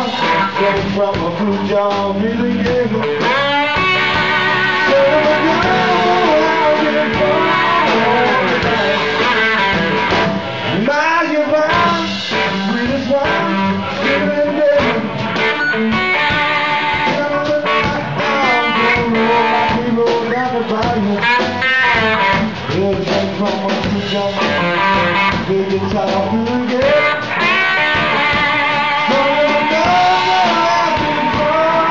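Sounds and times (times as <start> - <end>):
drum kit: 0.0 - 31.9
electric guitar bending notes: 0.0 - 31.9.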